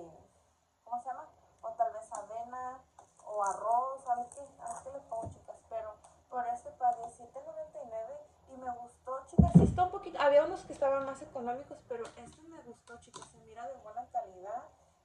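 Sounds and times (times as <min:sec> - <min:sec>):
woman talking: 0:00.0 - 0:00.3, 0:00.9 - 0:14.7
dull low thump: 0:09.4 - 0:09.9.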